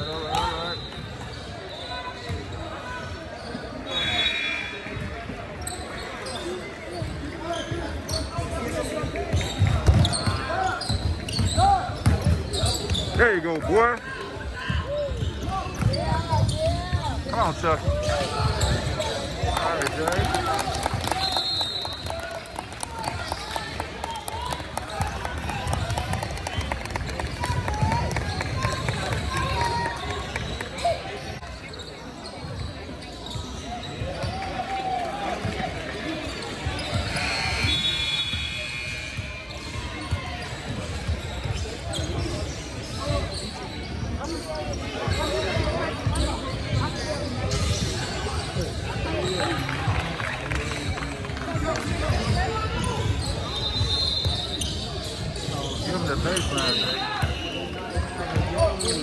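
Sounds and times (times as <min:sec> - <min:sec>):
voices in large gym: 0:00.0 - 0:59.0
brief high-pitched squeal: 0:03.9 - 0:05.0, 0:36.8 - 0:39.9.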